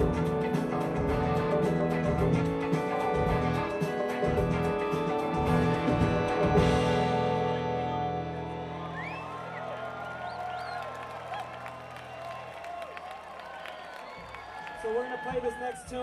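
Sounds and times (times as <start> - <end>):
live afrobeat band: 0.0 - 7.9
crowd cheering and whistling: 8.0 - 16.0.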